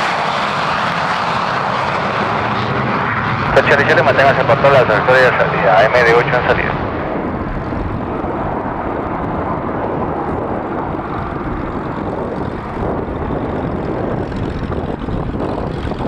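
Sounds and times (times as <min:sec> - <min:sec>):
jet engines at takeoff: 0:00.0 - 0:16.0.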